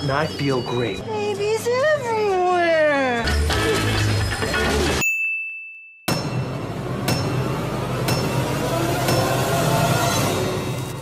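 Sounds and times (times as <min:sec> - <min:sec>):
busy commercial audio: 0:00.0 - 0:05.0
bell ding: 0:05.0 - 0:06.6.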